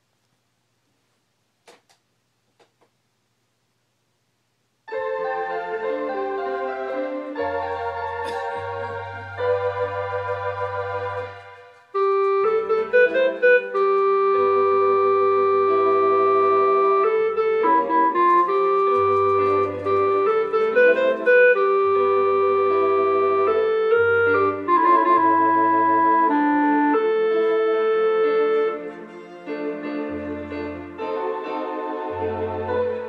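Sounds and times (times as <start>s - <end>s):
organ bass pedal notes: 4.9s - 28.9s
electronic organ chords and melody: 4.9s - 33.0s.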